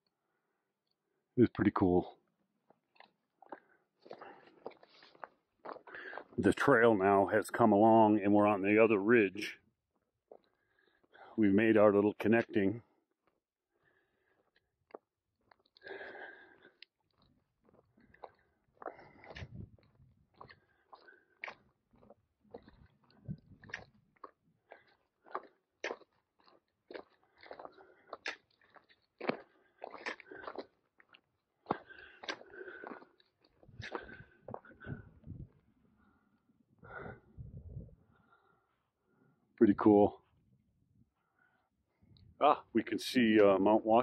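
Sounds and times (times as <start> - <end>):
footsteps crunching on dirt trail: 3.0 - 6.4, 14.4 - 34.9.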